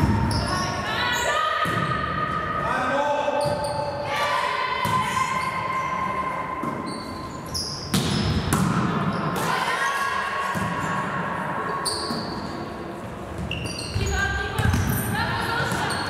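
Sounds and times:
shoes squeaking on wooden floor: 13.4 - 14.3.

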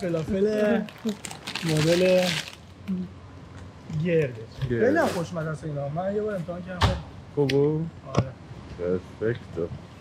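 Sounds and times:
men talking: 0.0 - 2.6, 3.8 - 10.0.

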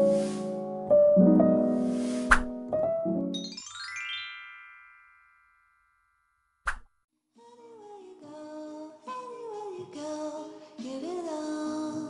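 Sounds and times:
soft background music: 0.0 - 3.3
short pop: 2.3 - 2.5, 6.7 - 6.9
chime: 3.3 - 6.6.

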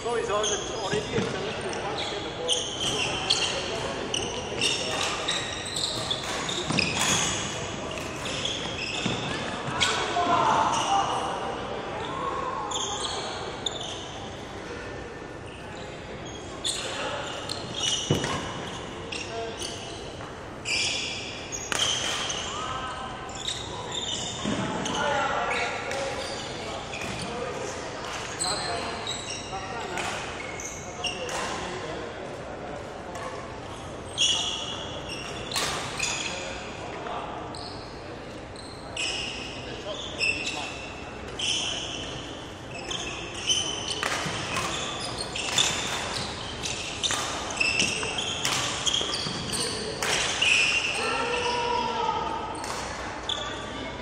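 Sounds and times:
shoes squeaking on wooden floor: 0.1 - 7.6, 8.2 - 10.0, 38.6 - 51.2.

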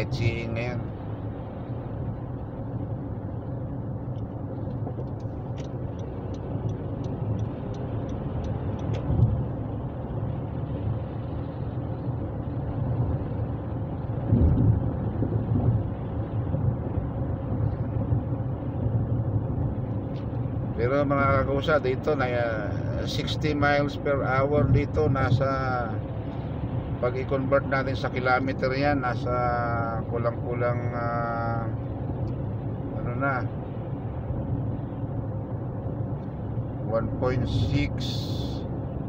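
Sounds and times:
car cabin road and engine rumble: 0.0 - 39.0
low thumps: 14.2 - 16.9.

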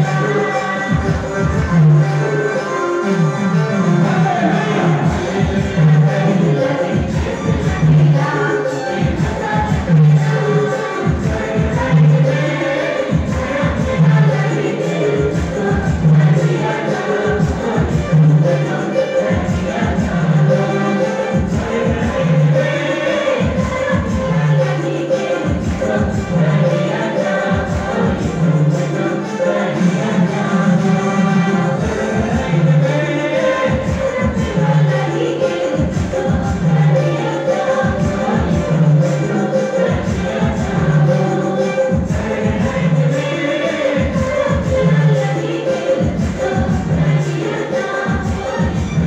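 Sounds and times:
choir singing devotional song: 0.0 - 49.0.

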